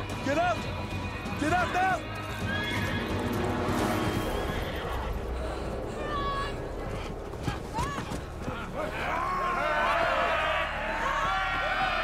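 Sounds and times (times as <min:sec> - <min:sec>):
dramatic film score: 0:00.0 - 0:12.0.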